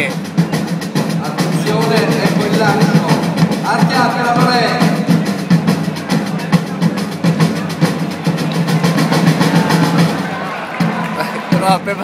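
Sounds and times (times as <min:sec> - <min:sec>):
field drums rolling rhythm: 0:00.0 - 0:12.0.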